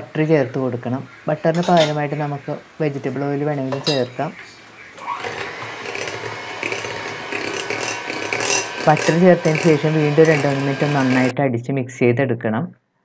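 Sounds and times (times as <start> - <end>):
person speaking: 0.0 - 4.6, 8.6 - 12.7
electric hand mixer running: 5.0 - 11.3.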